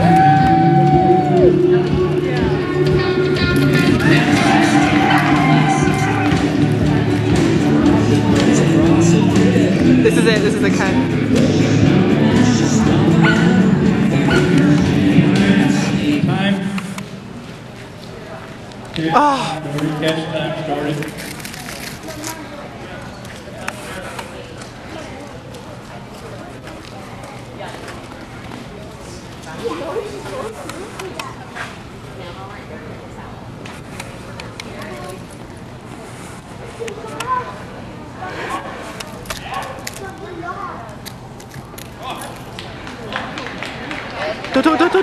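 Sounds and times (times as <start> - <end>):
background murmur: 0.0 - 45.0
people talking indistinctly: 0.8 - 17.0, 44.4 - 45.0
person calling out: 19.1 - 19.6, 44.6 - 45.0.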